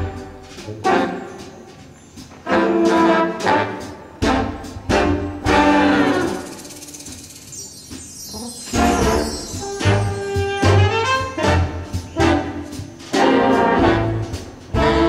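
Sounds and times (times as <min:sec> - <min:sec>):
brass section playing chords: 0:00.0 - 0:01.6, 0:02.4 - 0:06.6, 0:08.7 - 0:15.0.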